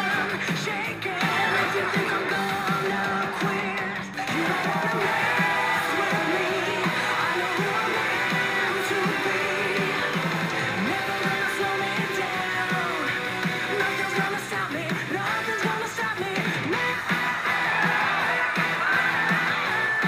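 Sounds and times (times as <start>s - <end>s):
woman singing: 0.0s - 10.2s, 13.7s - 17.0s
pop-rock band music: 0.0s - 20.0s.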